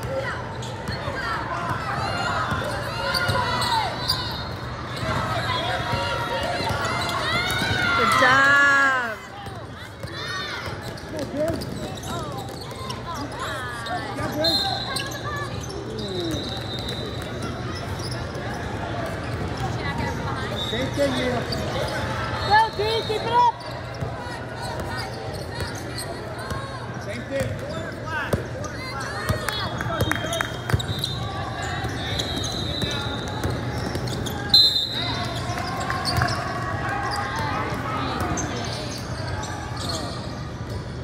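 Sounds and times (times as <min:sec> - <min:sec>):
chatter in a gym: 0:00.0 - 0:41.0.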